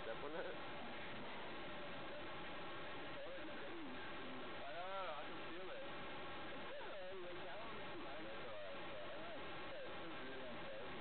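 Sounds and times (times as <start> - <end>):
voices talking quietly: 0.0 - 11.0.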